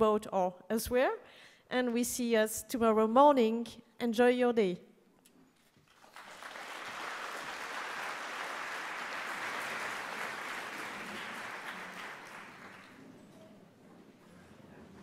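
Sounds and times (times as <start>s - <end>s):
audience applauding: 5.8s - 13.3s.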